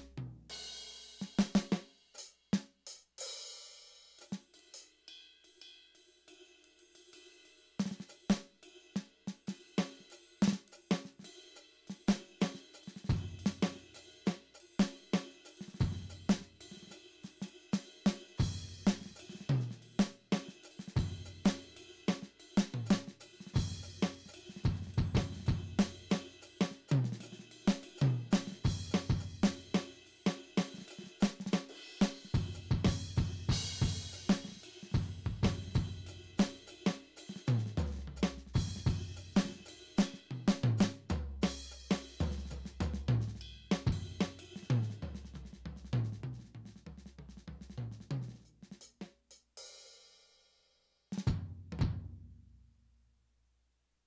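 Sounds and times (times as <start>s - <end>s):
electronic drum kit groove: 0.0s - 49.9s
hi-hat and cymbals: 0.0s - 51.4s.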